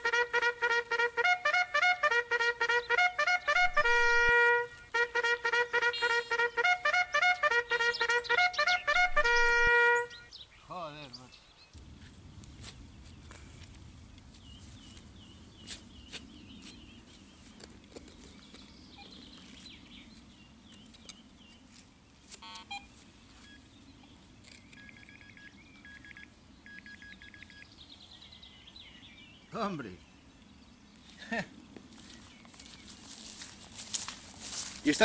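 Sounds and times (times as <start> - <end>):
birds chirping: 0.0 - 12.0, 12.8 - 35.0
metal detector beeping: 22.4 - 23.6, 24.7 - 27.6.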